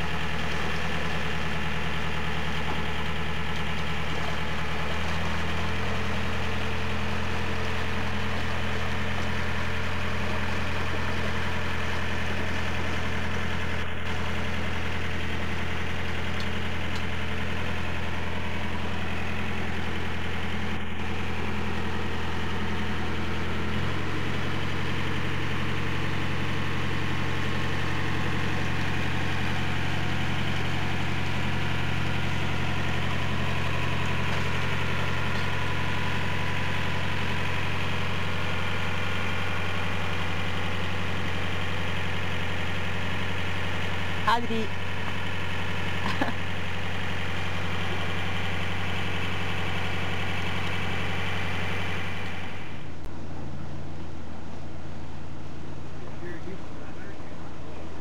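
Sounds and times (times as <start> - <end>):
boat engine running: 0.0 - 58.0.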